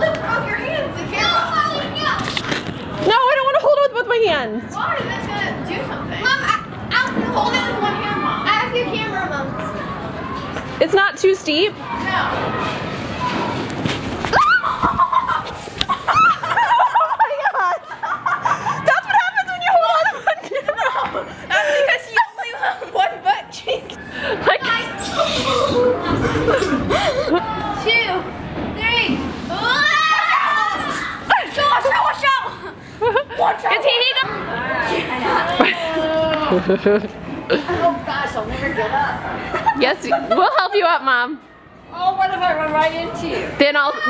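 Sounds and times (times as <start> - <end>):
children shouting and chattering: 0.0 - 44.0.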